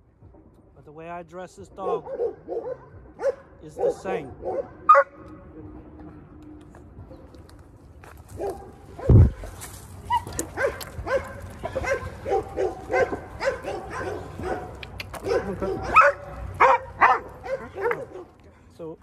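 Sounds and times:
dogs barking: 0:01.8 - 0:05.4, 0:08.3 - 0:18.4.

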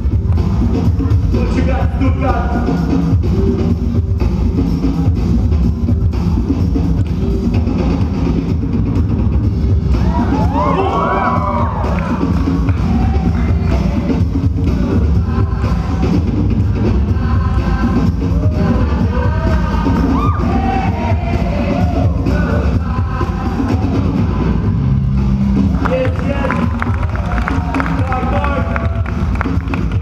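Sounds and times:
dj music with heavy bass beat: 0:00.0 - 0:30.0
crowd cheering and whooping: 0:09.9 - 0:13.6, 0:20.0 - 0:20.7, 0:26.3 - 0:29.8.

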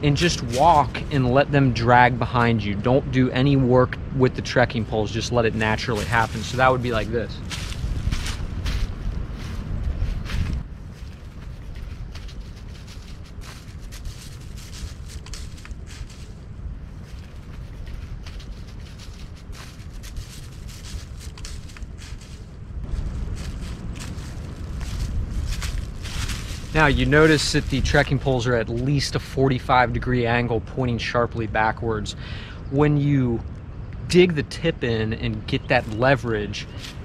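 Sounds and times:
footsteps crunching through dry leaves: 0:00.0 - 0:01.4, 0:05.4 - 0:29.1, 0:35.8 - 0:37.0
low wind rumble on microphone: 0:00.0 - 0:37.0
trekking pole tips scraping: 0:05.6 - 0:16.4, 0:36.7 - 0:37.0.

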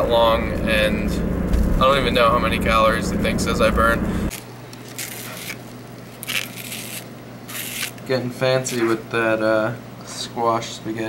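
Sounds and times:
low steady hum: 0:00.0 - 0:08.3
spiral slicer cutting zucchini: 0:06.2 - 0:08.0.

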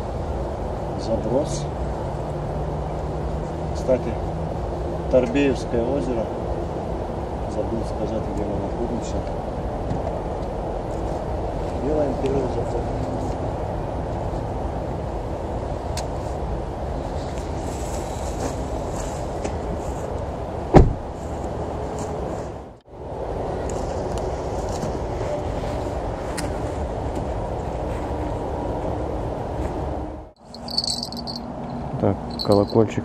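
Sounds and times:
sharp thump: 0:20.7 - 0:21.0
crickets chirping: 0:30.4 - 0:33.0.

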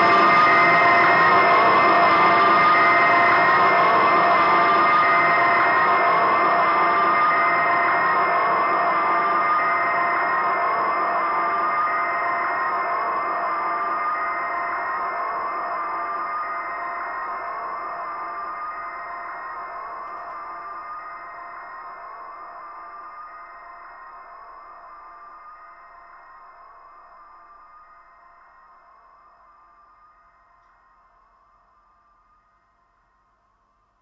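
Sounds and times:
electronic drone: 0:00.0 - 0:27.1.

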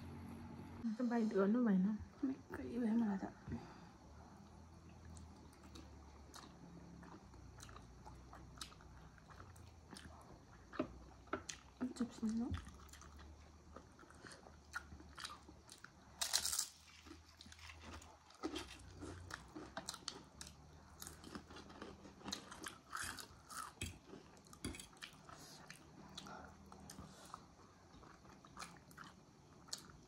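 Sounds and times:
chewing: 0:04.4 - 0:30.0.

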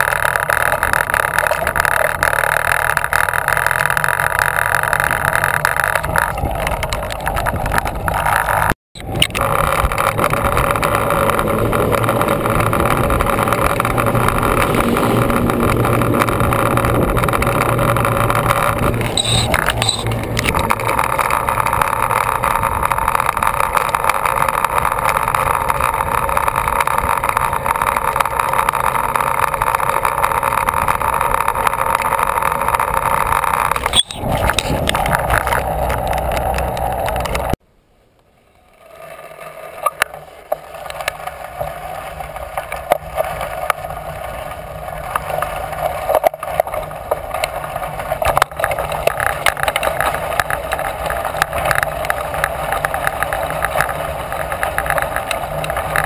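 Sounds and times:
bicycle tyres humming on steel grate: 0:00.0 - 0:37.6, 0:38.2 - 0:56.0.

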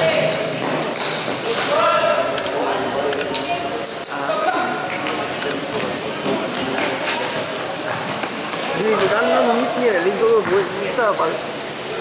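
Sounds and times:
sneakers squeaking on floor: 0:00.0 - 0:02.3, 0:03.2 - 0:05.1, 0:05.7 - 0:12.0
players' voices: 0:00.0 - 0:12.0.

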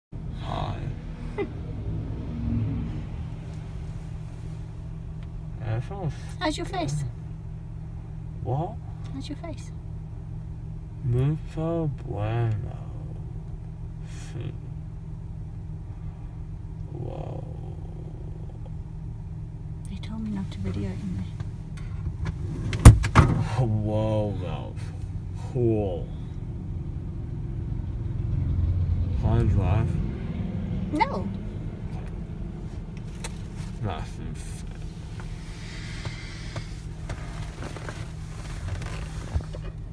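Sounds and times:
car engine rumbling: 0:00.1 - 0:39.9
low vocal hum: 0:00.2 - 0:04.8, 0:11.0 - 0:14.9, 0:16.0 - 0:19.2.

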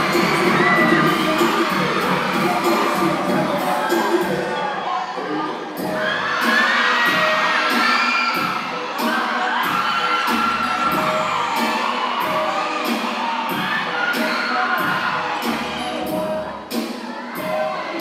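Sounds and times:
dance music with steady beat: 0:00.0 - 0:04.6, 0:05.8 - 0:18.0
audience cheering and shouting: 0:00.0 - 0:18.0.

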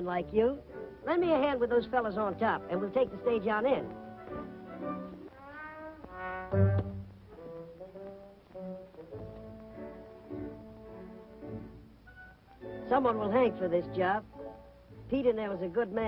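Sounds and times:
orchestral music with horns: 0:00.2 - 0:15.8.

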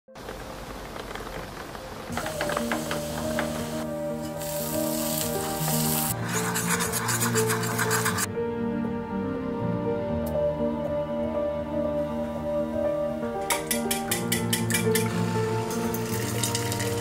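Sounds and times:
soft instrumental music: 0:01.9 - 0:17.0
bread sizzling in a pan: 0:02.2 - 0:06.2, 0:15.6 - 0:17.0
wooden spatula rubbing a pan: 0:06.1 - 0:08.3.

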